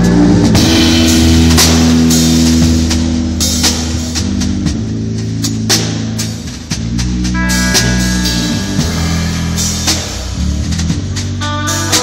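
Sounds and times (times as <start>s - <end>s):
cymbal strikes: 0.0s - 4.7s, 5.3s - 12.0s
jazz band playing: 0.0s - 12.0s
low electric string notes: 0.0s - 12.0s.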